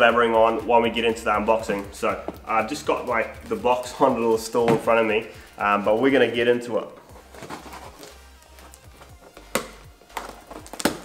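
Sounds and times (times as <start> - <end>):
quiet background music: 0.0 - 11.0
knife cutting packing tape: 7.2 - 11.0.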